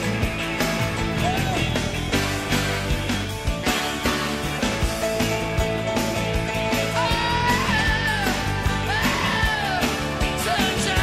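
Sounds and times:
rock song: 0.0s - 11.0s
sliding lead guitar melody: 0.0s - 11.0s.

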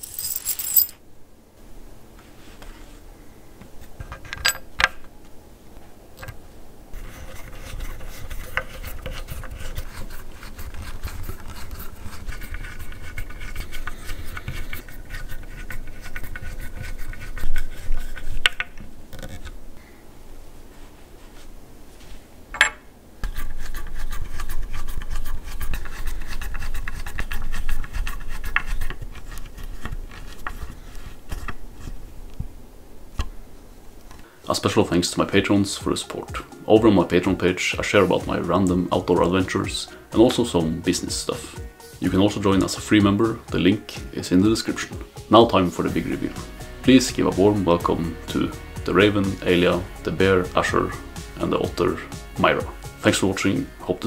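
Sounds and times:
high metallic jingle: 0.0s - 1.0s.

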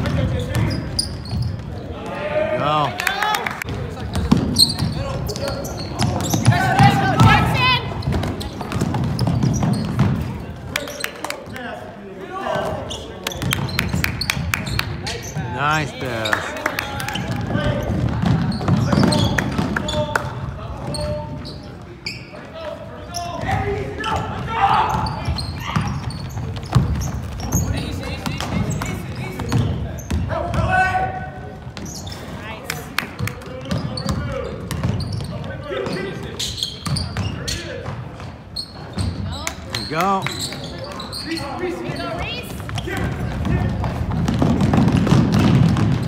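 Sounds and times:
people shouting in a hall: 23.5s - 25.9s
basketball dribbling on hardwood: 42.8s - 46.0s.

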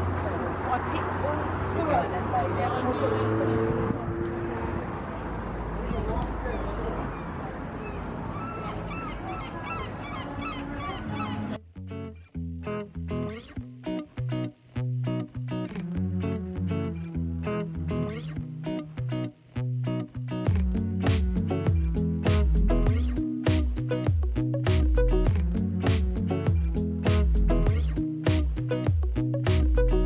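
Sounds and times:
harbour ambience: 0.0s - 11.6s
gulls calling: 5.7s - 11.6s
music with rhythm and bass line: 11.6s - 30.0s.

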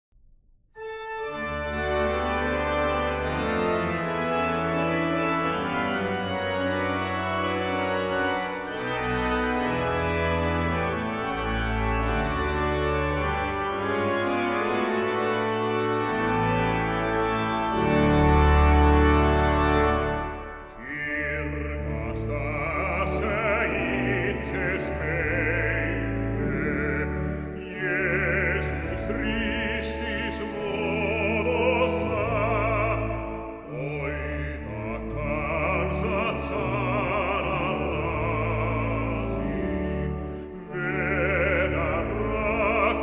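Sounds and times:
pipe organ playing hymn: 0.8s - 43.0s.

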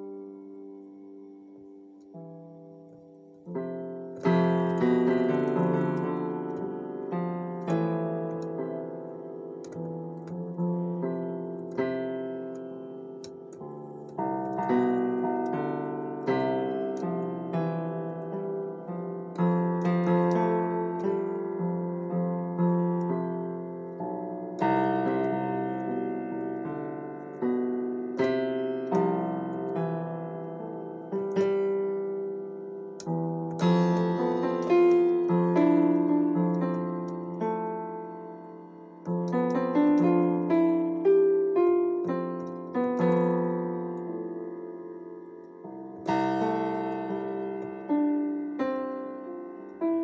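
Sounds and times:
keyboard improvisation: 0.0s - 50.0s.

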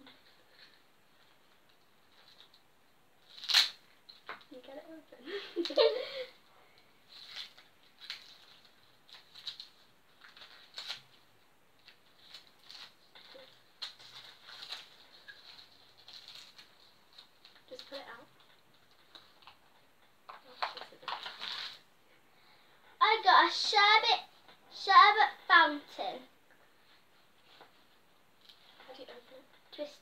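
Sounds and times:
faint children giggling: 5.3s - 6.4s
wrapping paper crinkling: 7.0s - 21.8s.

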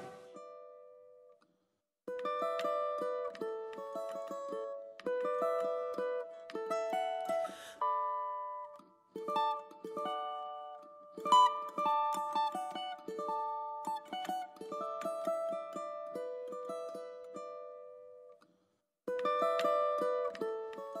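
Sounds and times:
plucked string melody: 0.0s - 1.3s, 2.1s - 18.4s, 19.1s - 21.0s.

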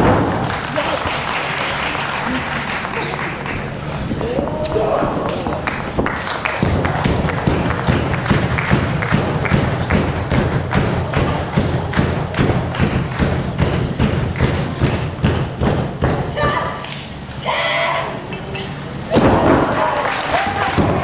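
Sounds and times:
steady low hum: 0.0s - 21.0s
rhythmic thudding: 3.6s - 16.8s.

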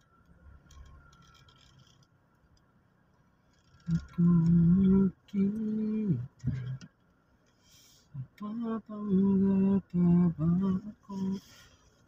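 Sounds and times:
low rumble inside moving car: 0.0s - 12.0s.

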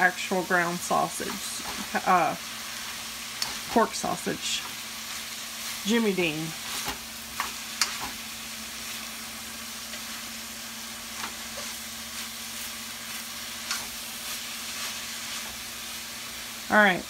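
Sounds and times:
meat sizzling in a wok: 0.0s - 17.0s.

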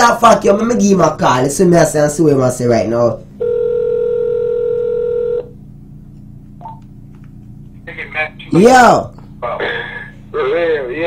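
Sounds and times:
telephone ringback tone: 3.4s - 5.5s.

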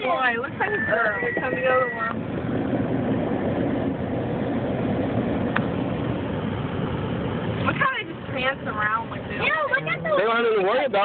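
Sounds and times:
car engine: 0.0s - 11.0s
wind noise on microphone: 0.2s - 6.4s.

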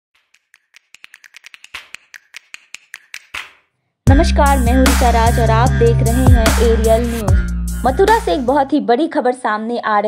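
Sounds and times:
sharp clicks quickening: 0.2s - 3.6s.

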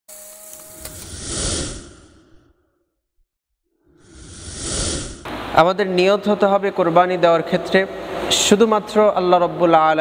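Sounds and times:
whoosh sound effect: 4.0s - 5.6s.

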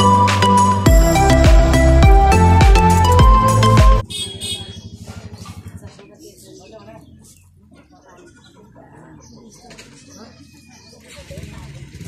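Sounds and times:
faint voices outdoors: 4.0s - 12.0s.

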